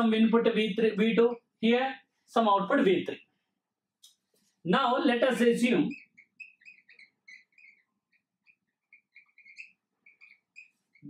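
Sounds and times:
marker squeaking on whiteboard: 5.4 - 11.0.

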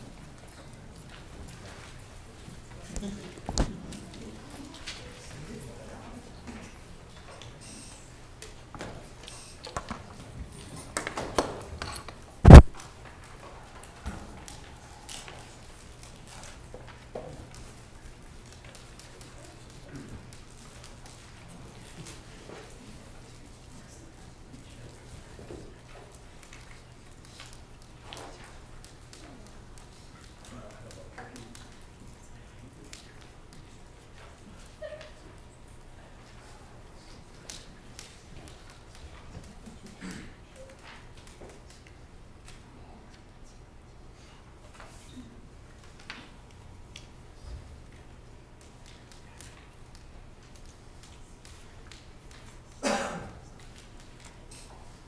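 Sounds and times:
loud thump on microphone: 12.4 - 12.8.

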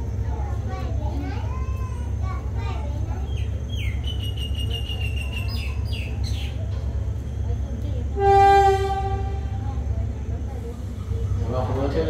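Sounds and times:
locomotive horn blast: 8.1 - 9.8.

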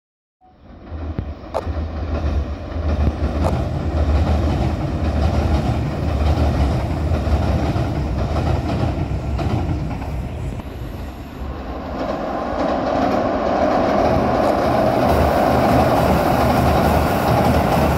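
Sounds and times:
electric train rumbling over bridge: 0.4 - 17.9
train wheels clacking on rails: 0.7 - 17.9.

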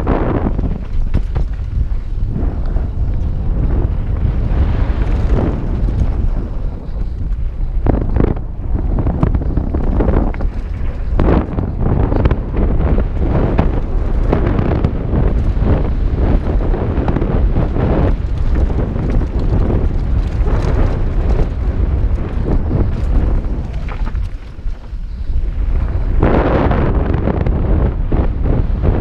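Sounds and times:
bike knocks and rattles: 0.0 - 25.9
wind buffeting microphone: 0.0 - 29.0.

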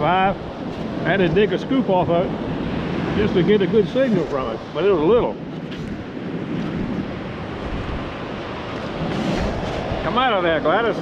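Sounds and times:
ocean surf: 0.0 - 11.0
wind buffeting microphone: 0.0 - 11.0.

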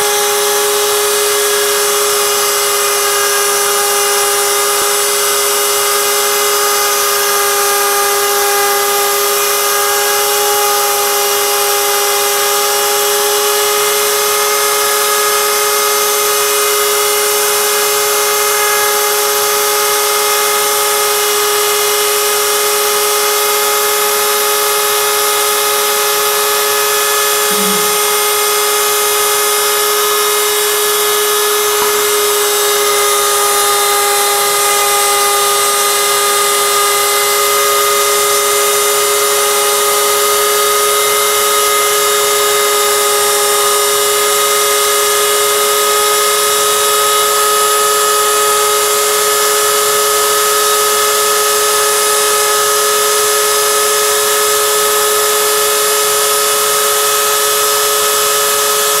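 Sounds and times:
router spindle carving wood: 0.0 - 59.0.

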